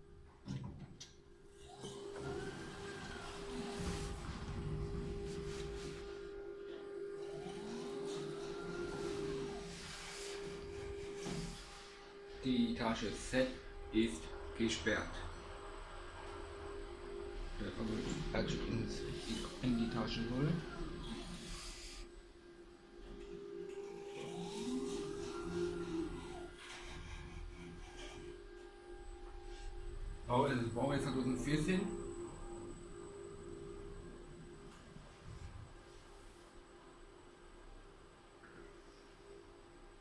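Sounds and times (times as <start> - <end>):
elevator motor whine: 0.0 - 40.0
steady hum in elevator car: 0.0 - 40.0.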